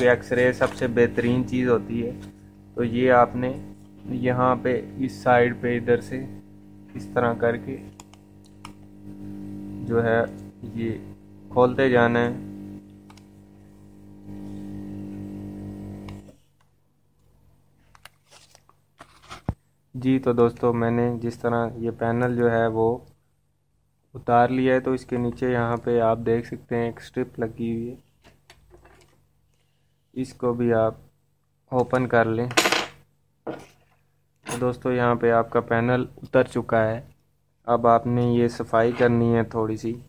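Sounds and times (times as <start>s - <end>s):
steady low hum: 0.0s - 28.5s.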